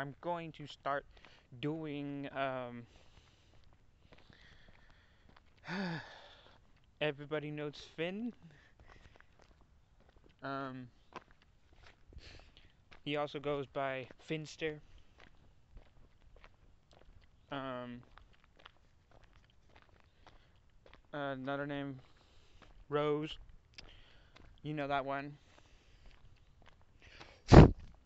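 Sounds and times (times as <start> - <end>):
man's breathy exhalation: 2.8 - 6.6, 12.2 - 12.7, 27.0 - 27.8.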